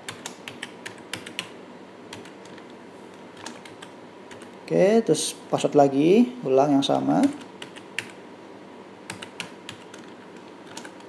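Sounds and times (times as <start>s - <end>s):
computer keyboard typing: 0.0s - 2.7s, 3.4s - 4.6s, 7.2s - 8.2s, 9.1s - 11.0s.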